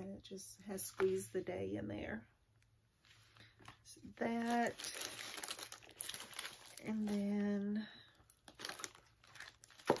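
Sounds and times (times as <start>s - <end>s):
woman speaking: 0.0s - 2.4s, 3.9s - 5.1s, 6.8s - 8.1s
paper crinkling and rustling: 3.4s - 7.6s, 8.2s - 10.0s.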